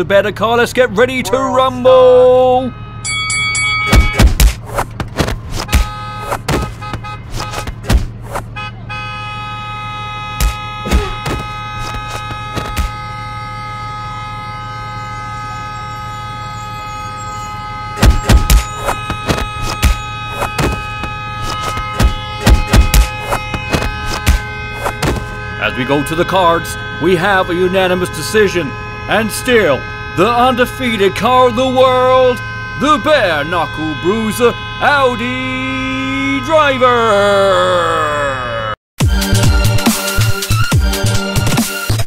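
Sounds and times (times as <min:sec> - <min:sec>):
punches thumping: 0:03.9 - 0:08.2, 0:10.4 - 0:13.0, 0:18.0 - 0:25.4.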